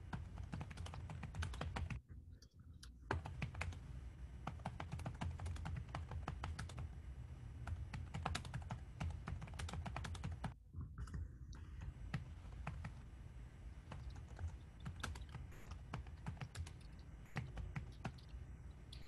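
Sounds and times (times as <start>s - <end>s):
keyboard typing: 0.0s - 2.0s, 2.8s - 7.0s, 7.6s - 13.1s, 13.8s - 19.0s
low hum: 10.4s - 19.0s.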